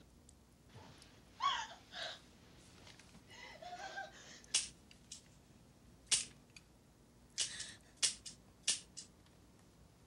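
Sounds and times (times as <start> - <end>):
young girl sobbing: 1.4 - 2.3, 3.3 - 4.5
sharp click: 7.4 - 9.1.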